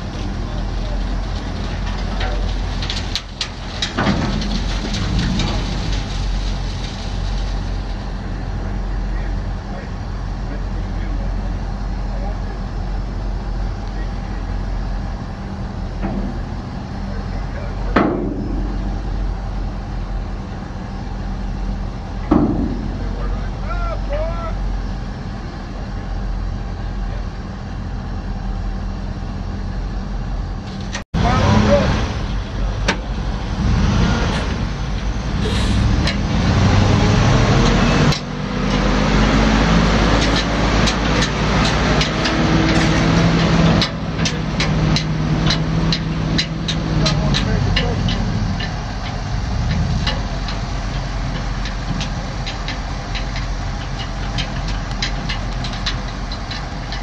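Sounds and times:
truck engine idling: 0:00.0 - 0:57.0.

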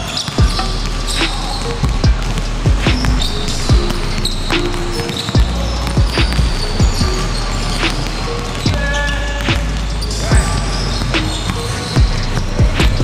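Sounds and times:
background music: 0:00.0 - 0:13.0
basketball bouncing on wooden floor: 0:00.0 - 0:13.0.

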